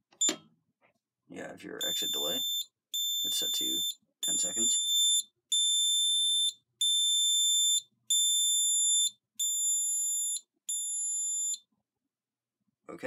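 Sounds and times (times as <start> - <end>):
high-pitched alarm keypad beeps: 1.8 - 11.6.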